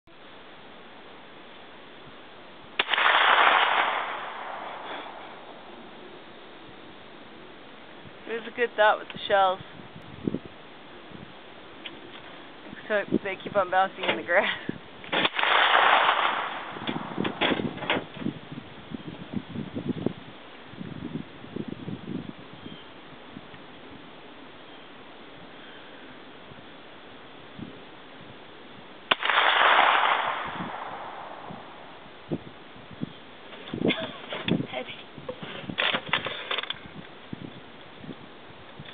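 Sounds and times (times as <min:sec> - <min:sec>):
gunshot: 0:02.8 - 0:05.4, 0:15.1 - 0:17.8, 0:29.1 - 0:31.8.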